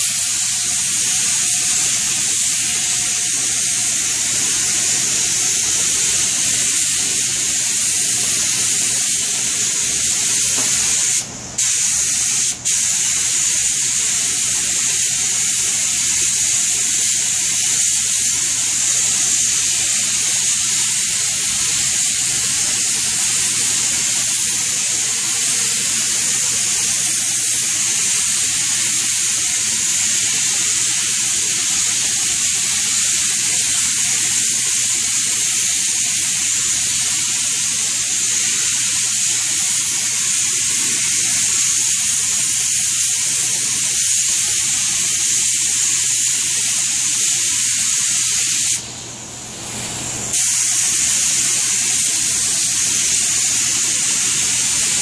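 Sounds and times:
spray gun hissing: 0.0s - 55.0s.

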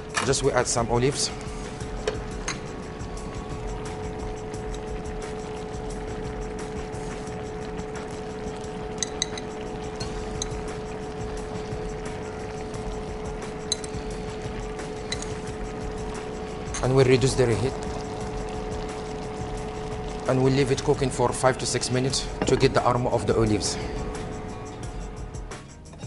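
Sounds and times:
steady low hum: 0.0s - 26.0s
stew simmering: 1.4s - 25.5s.

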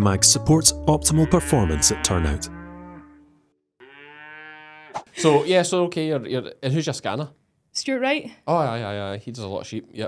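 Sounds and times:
cow mooing: 1.0s - 5.2s.

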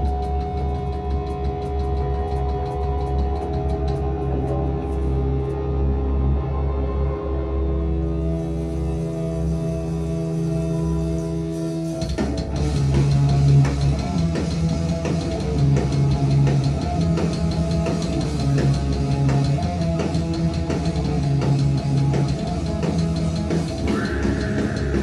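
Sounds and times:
drum kit beat: 0.0s - 4.1s, 11.8s - 25.0s
rock band playing: 8.2s - 25.0s.

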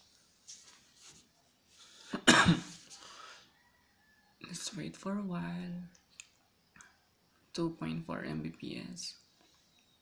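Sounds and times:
man coughing: 2.1s - 2.8s.

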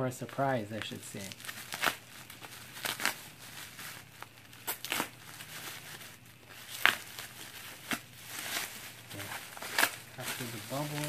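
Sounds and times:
plastic wrapping crinkling: 0.4s - 11.0s.

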